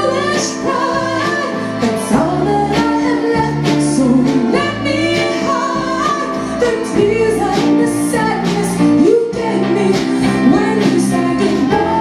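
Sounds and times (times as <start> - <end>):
woman singing with live band: 0.0 - 12.0.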